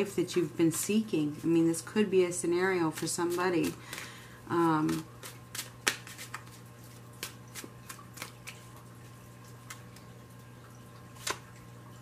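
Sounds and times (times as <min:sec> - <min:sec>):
cards being shuffled: 0:02.9 - 0:08.8.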